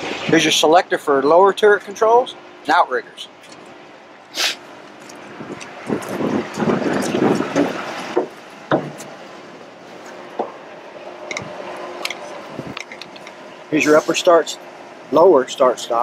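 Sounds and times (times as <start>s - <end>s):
boots knocking on metal: 7.4s - 9.2s.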